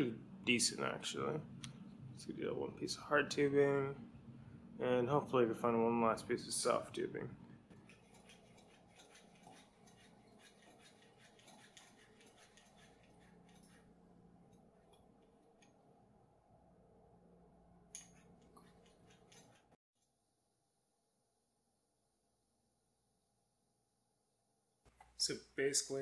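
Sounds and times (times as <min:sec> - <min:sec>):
hand pump clicking and rubbing: 0:07.8 - 0:13.9, 0:18.0 - 0:19.8.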